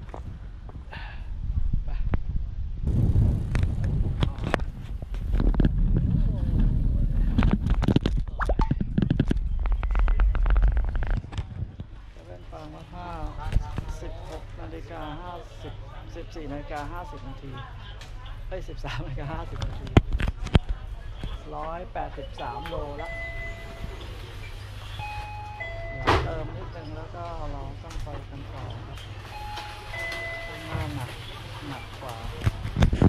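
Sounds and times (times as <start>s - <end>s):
wind on microphone: 0.0s - 12.1s, 32.4s - 33.0s
road rumble: 0.0s - 13.6s
two-note door chime: 23.0s - 24.2s, 25.0s - 26.5s, 29.3s - 31.0s.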